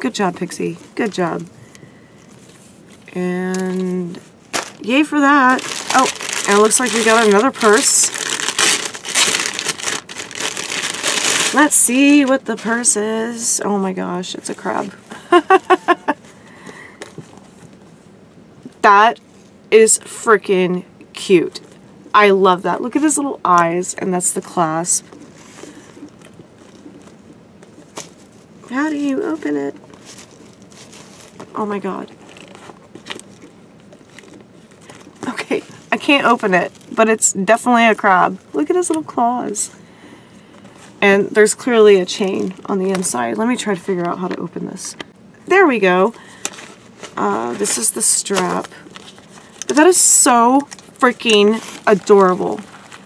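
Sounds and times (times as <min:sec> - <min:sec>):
packaging wrap crinkling: 0:00.1 - 0:13.5, 0:24.2 - 0:37.0, 0:46.0 - 0:53.0
purse handling noise: 0:00.4 - 0:13.0, 0:24.4 - 0:37.0.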